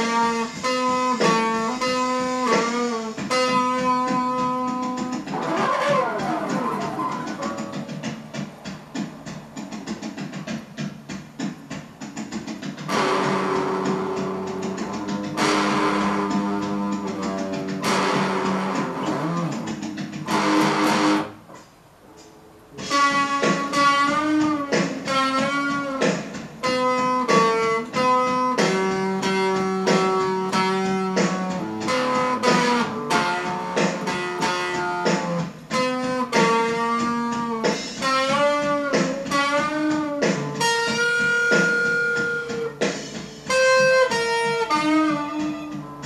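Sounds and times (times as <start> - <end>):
electric guitar lead melody: 0.0 - 8.8, 12.4 - 46.0.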